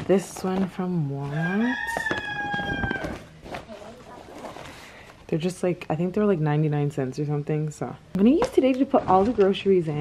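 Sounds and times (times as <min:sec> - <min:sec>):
rooster crowing: 0:01.2 - 0:03.3.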